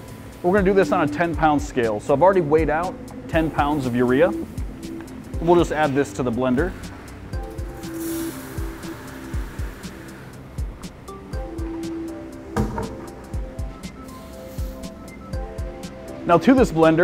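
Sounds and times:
background music with a beat: 0:00.0 - 0:17.0.

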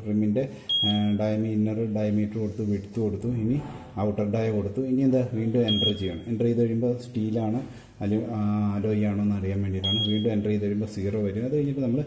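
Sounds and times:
man talking: 0:00.0 - 0:12.0
high electronic keypad beep: 0:00.7 - 0:01.2, 0:05.7 - 0:06.2, 0:09.8 - 0:10.4.

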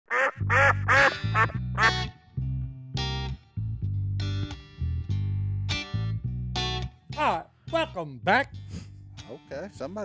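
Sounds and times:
duck quacks: 0:00.1 - 0:02.1
low theme music: 0:00.4 - 0:10.0.

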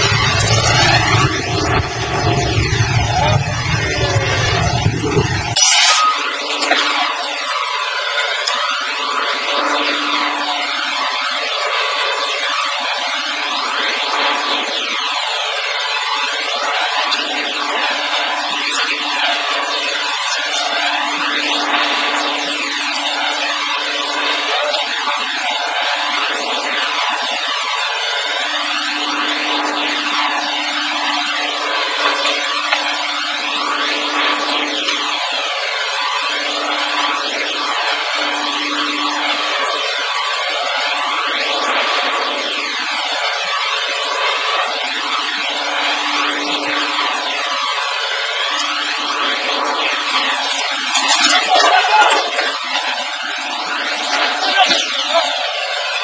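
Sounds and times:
excavator diesel engine drone: 0:00.0 - 0:56.0
humming tone: 0:00.0 - 0:56.0.

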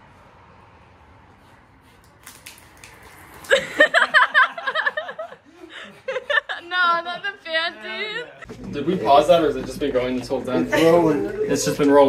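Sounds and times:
man spitting out water: 0:02.1 - 0:04.1
people laughing: 0:03.5 - 0:12.0.

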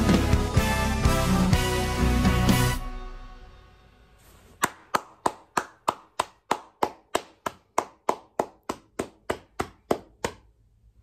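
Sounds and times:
person clapping hands slowly: 0:04.6 - 0:10.5.

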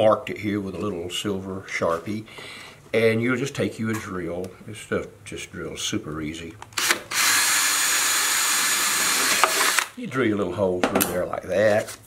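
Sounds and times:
cordless drill boring through plastic: 0:06.8 - 0:09.9.

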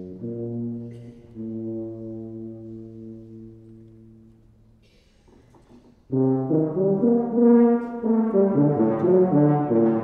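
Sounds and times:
tuba holding low note: 0:06.1 - 0:10.0.

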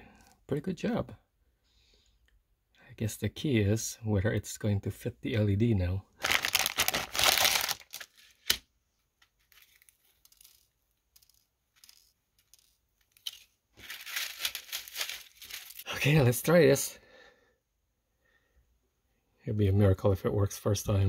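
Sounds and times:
plastic packaging crinkling: 0:06.2 - 0:08.6, 0:11.8 - 0:16.2.

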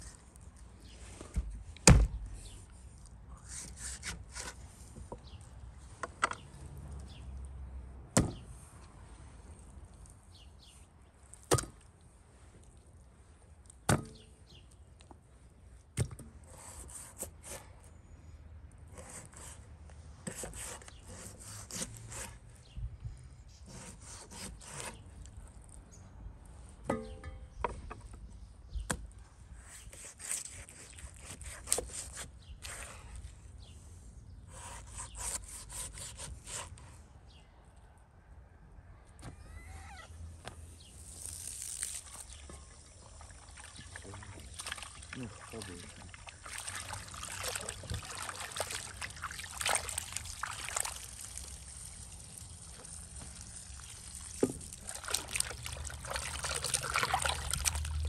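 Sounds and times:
knife cutting meat: 0:23.6 - 0:25.0, 0:29.6 - 0:33.0, 0:34.5 - 0:36.7
water running into a basin: 0:41.8 - 0:58.0.

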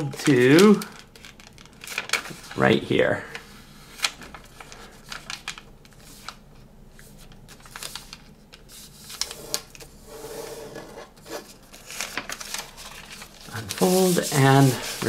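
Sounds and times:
paper being folded and creased: 0:00.0 - 0:15.0
fingers rubbing paper: 0:13.6 - 0:15.0.

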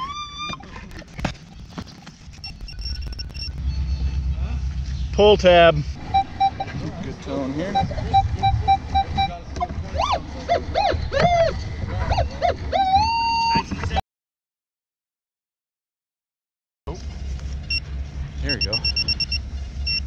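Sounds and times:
warbling detector tones: 0:02.3 - 0:04.4, 0:06.0 - 0:09.4
pinpointer beeping rapidly: 0:02.4 - 0:04.1, 0:06.0 - 0:09.4, 0:18.5 - 0:20.0
metal detector beeping: 0:02.4 - 0:04.3, 0:06.0 - 0:09.4, 0:18.5 - 0:20.0.

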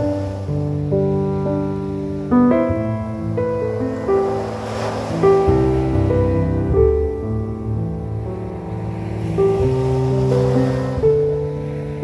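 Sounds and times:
ocean surf: 0:00.0 - 0:12.0
solo piano: 0:00.0 - 0:12.0.

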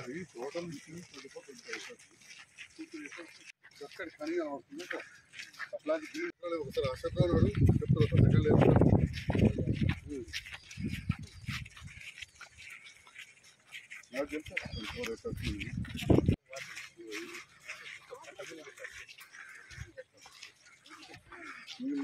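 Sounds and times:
people talking outdoors: 0:00.0 - 0:22.0.

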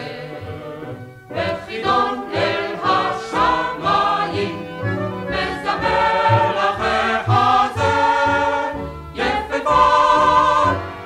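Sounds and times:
vocal group singing with instruments: 0:00.0 - 0:11.0.

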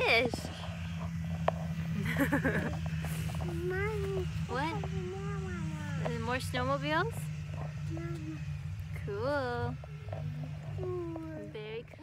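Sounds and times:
steady low hum: 0:00.0 - 0:12.0
woman laughing: 0:02.0 - 0:02.8.

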